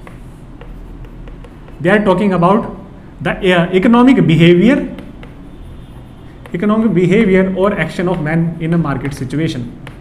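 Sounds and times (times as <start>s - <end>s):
chalk tapping and scratching: 0.0s - 2.4s, 4.3s - 10.0s.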